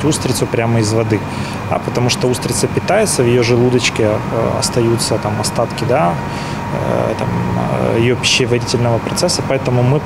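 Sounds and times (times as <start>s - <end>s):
low background hum: 0.0s - 10.0s.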